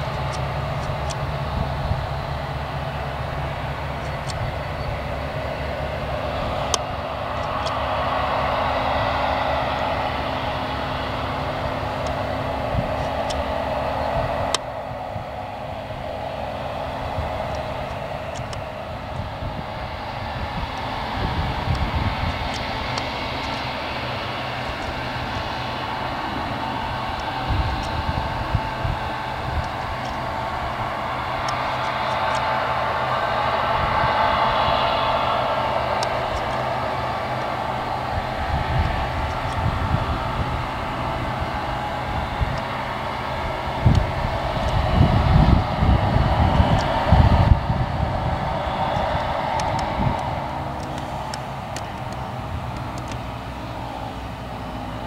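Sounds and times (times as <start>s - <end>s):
combine harvester working: 0.0s - 55.0s
tractor diesel engine running: 0.0s - 55.0s.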